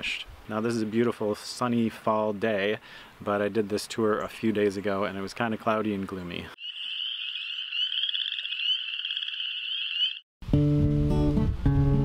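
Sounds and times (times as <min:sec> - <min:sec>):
frogs trilling: 0:06.6 - 0:10.2.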